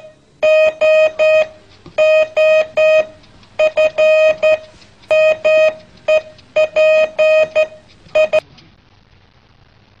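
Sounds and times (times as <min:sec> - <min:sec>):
short electronic beeps: 0:00.0 - 0:08.4
faint room noise: 0:00.0 - 0:10.0.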